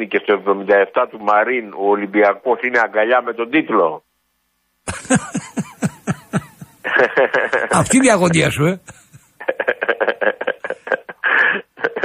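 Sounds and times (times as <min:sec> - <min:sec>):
person laughing over telephone: 0:04.9 - 0:08.0, 0:08.8 - 0:12.0.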